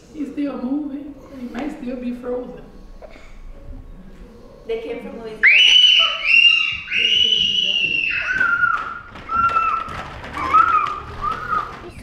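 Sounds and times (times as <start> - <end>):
high-pitched vocal squeals: 5.4 - 12.0.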